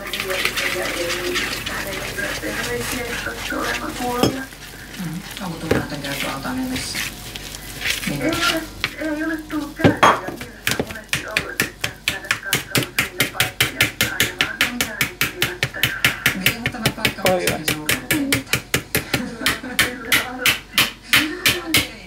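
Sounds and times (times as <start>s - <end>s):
whisk clicking against bowl: 0.0s - 4.5s, 10.2s - 22.0s.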